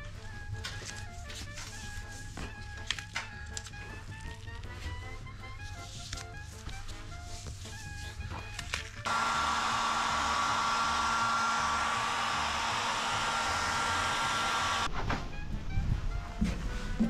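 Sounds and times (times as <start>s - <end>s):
hair dryer blowing: 9.1s - 14.9s.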